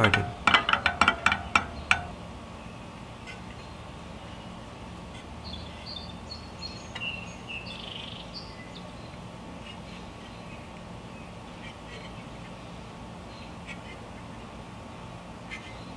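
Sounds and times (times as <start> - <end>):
bicycle spokes plucked pinging: 0.0 - 2.1
outdoor hush: 0.0 - 15.9.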